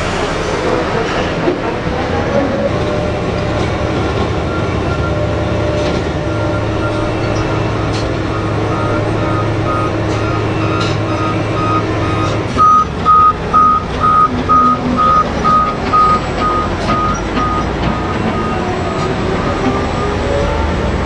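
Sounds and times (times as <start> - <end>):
low machinery drone: 0.0 - 21.0
truck reversing alarm beeping: 3.8 - 20.7.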